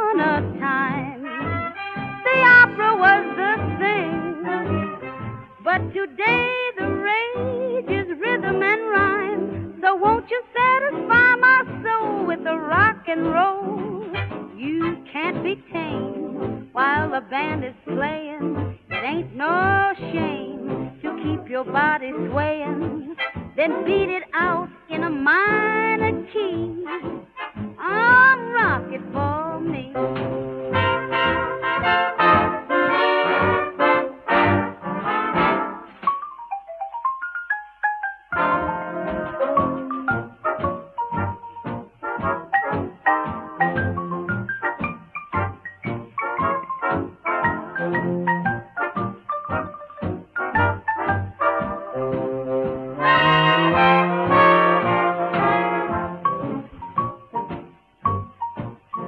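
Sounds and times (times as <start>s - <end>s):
swing big band instrumental: 0.0s - 36.4s, 37.2s - 59.0s
big band brass playing: 30.0s - 36.0s, 38.3s - 56.7s.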